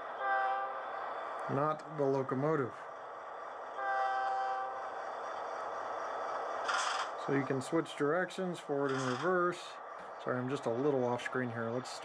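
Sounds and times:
locomotive horn blast from speaker: 0:00.0 - 0:01.0, 0:03.7 - 0:04.8
steady engine sound: 0:00.0 - 0:12.0.

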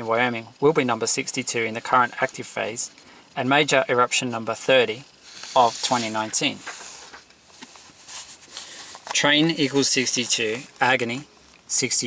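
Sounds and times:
low background hiss: 0:00.0 - 0:12.0
paper sheet rustling: 0:05.3 - 0:11.2.

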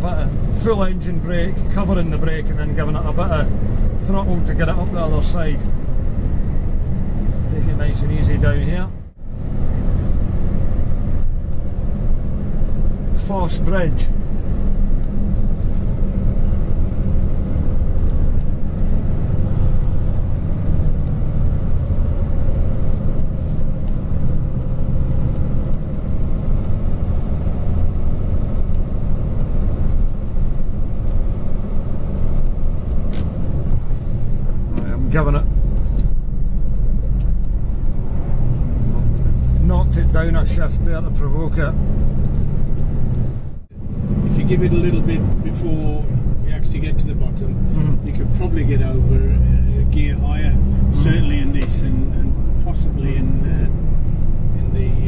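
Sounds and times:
road noise: 0:00.0 - 0:55.0
truck diesel engine rumble in cab: 0:00.0 - 0:55.0.

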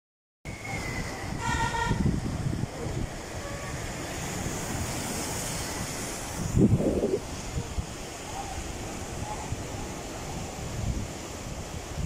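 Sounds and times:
surf washing over rocks: 0:00.5 - 0:12.0
wind rumbling on microphone: 0:00.5 - 0:12.0
short horn-like toot: 0:01.3 - 0:02.1.

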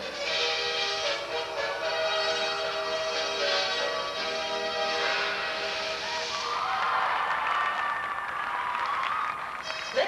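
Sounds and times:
audience applauding: 0:06.3 - 0:10.0.

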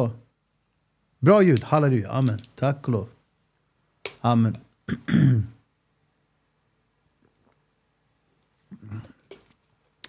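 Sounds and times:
man clearing his throat: 0:04.9 - 0:05.6, 0:08.7 - 0:09.2.

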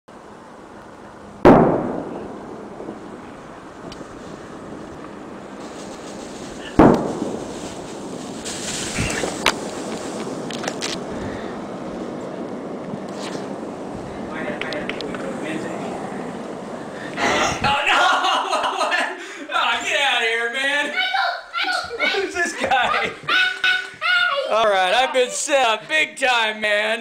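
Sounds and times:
steady hiss: 0:00.1 - 0:27.0
loud sharp bangs: 0:01.4 - 0:11.6.

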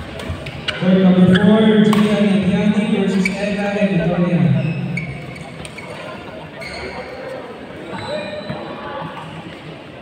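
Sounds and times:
badminton court noise: 0:00.0 - 0:10.0
echoing voices: 0:00.7 - 0:06.6.

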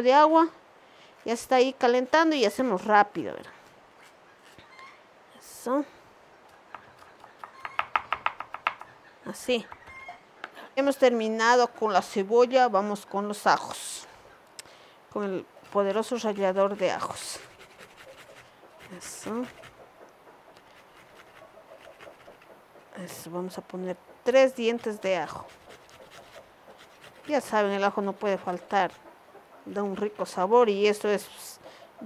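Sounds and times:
knife chopping on wooden board: 0:06.7 - 0:08.9
garlic rasping on metal grater: 0:15.7 - 0:19.7, 0:24.6 - 0:29.0.

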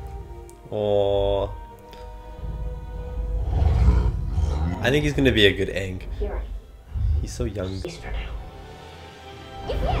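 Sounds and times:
music score playing: 0:00.0 - 0:10.0
deep low roar-like rumble: 0:02.4 - 0:07.9.

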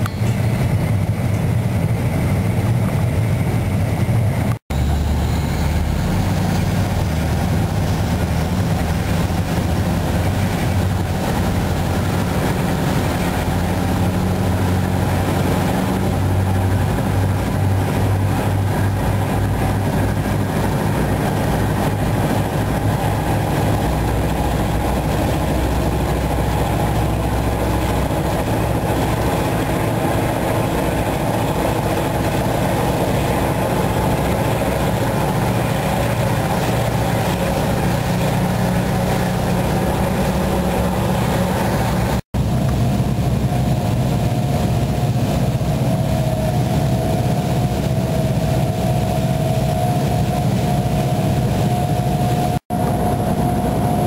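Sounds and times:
boat engines droning: 0:00.0 - 0:54.0
water rushing in wake: 0:00.0 - 0:54.0.

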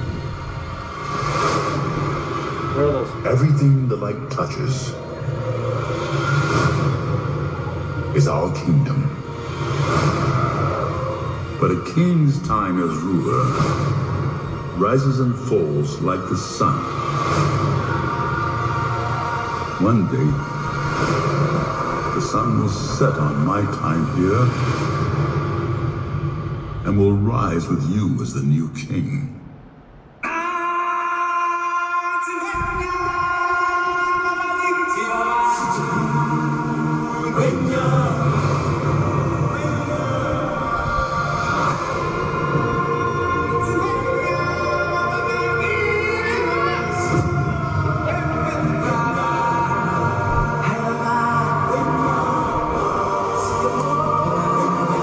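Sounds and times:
sustained orchestral chords: 0:00.0 - 0:28.0, 0:33.8 - 0:55.0
low drone: 0:00.0 - 0:55.0
orchestral sustained chord: 0:34.7 - 0:55.0.

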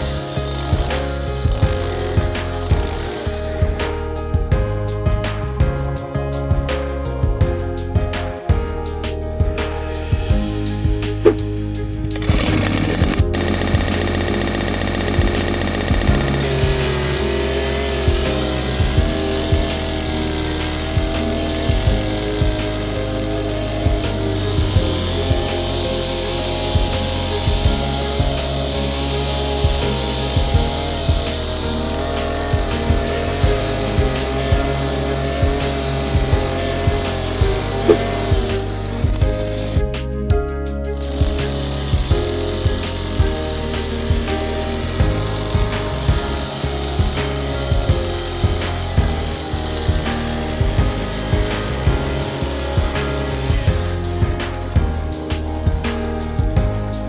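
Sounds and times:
earth auger engine running: 0:00.0 - 0:07.9, 0:09.8 - 0:40.0, 0:40.9 - 0:57.0
background music with steady beat: 0:00.0 - 0:57.0.

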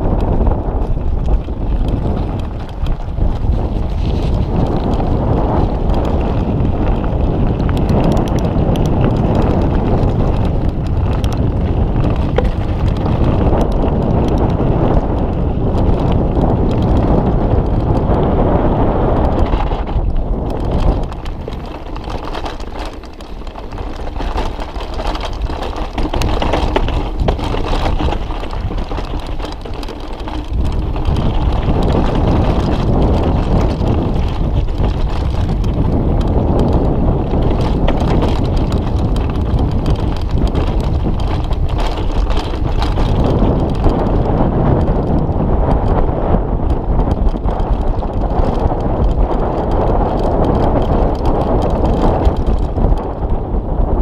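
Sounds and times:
bike rattles and knocks: 0:00.0 - 0:54.0
bike tyre rumble: 0:00.0 - 0:54.0
wind buffeting microphone: 0:00.0 - 0:54.0.

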